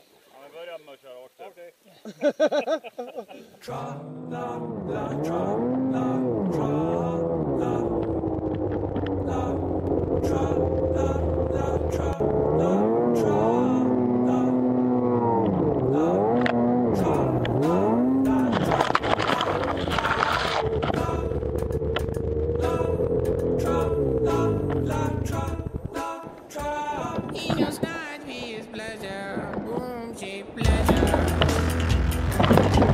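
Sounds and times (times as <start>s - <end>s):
snowmobile engine revving: 3.7s - 26.0s, 30.7s - 32.9s.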